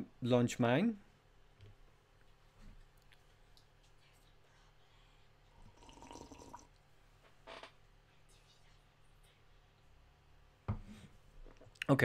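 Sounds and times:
swallow: 5.6 - 6.7.

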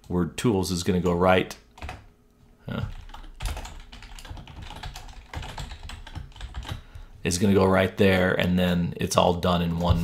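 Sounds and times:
computer keyboard typing: 1.8 - 2.0, 2.7 - 6.9.

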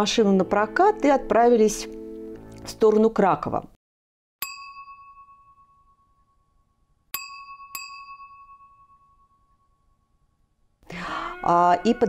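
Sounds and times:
bell-like ding chime: 4.4 - 10.2.

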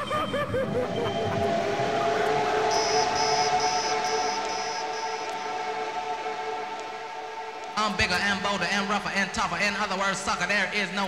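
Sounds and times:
pulsing high electronic beep: 0.0 - 5.8
wobbling siren-like synth tone: 0.0 - 6.4
two-note synth drone: 0.0 - 7.8.

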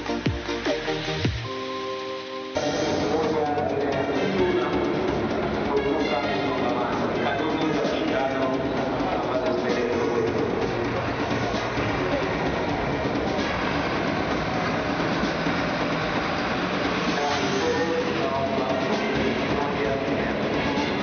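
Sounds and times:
indistinct voices: 2.6 - 21.0
bus diesel engine running: 4.4 - 21.0.

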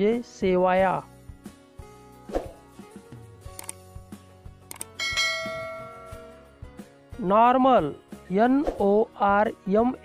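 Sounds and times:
soft background music: 0.0 - 10.0
sharp clicks: 3.6 - 3.8, 4.7 - 5.0
bright bell chime: 5.0 - 6.6.

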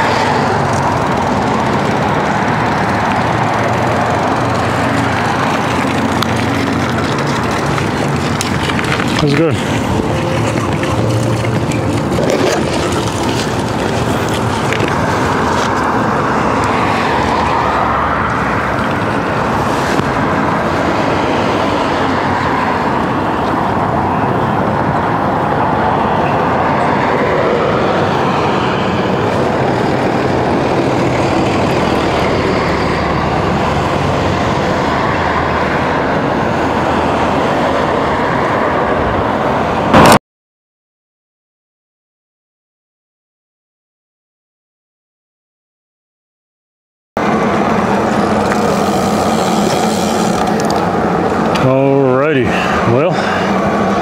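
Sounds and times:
road traffic noise: 0.0 - 40.2, 47.2 - 54.0.

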